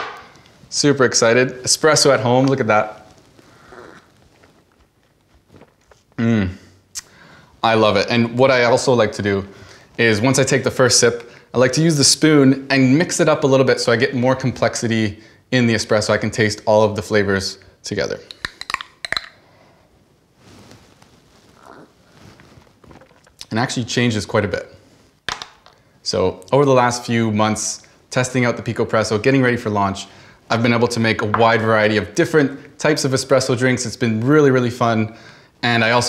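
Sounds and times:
person sipping espresso: 3.4 - 4.1, 21.5 - 23.4
faint soft sounds: 19.0 - 25.2.

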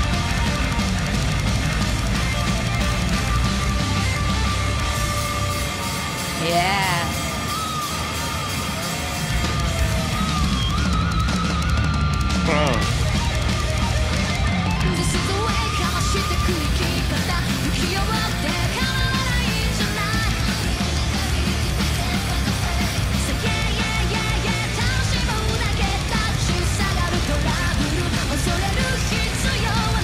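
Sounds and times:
distorted guitars: 0.0 - 30.0
fast driving drums: 0.0 - 30.0.

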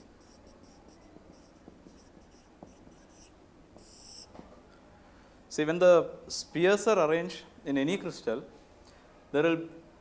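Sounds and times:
marker squeaking on whiteboard: 0.0 - 4.4.

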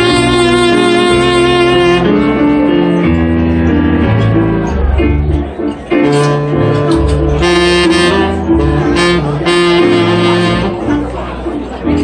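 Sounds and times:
keyboard playing jazz: 0.0 - 12.0
saxophone: 0.0 - 12.0.

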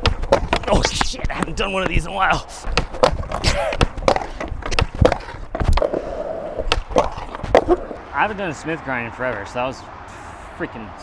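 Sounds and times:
skateboard clacking on concrete: 0.0 - 8.0
skateboard wheels rolling: 0.0 - 8.1
skateboard trucks scraping concrete: 0.0 - 9.5.

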